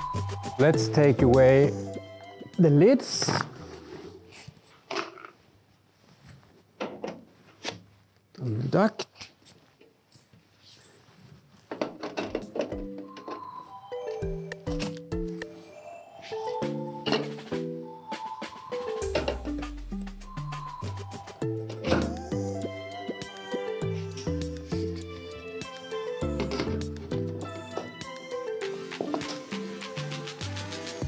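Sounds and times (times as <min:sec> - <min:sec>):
music with woody percussion: 0:00.0 - 0:03.5, 0:12.2 - 0:15.6, 0:16.4 - 0:31.0.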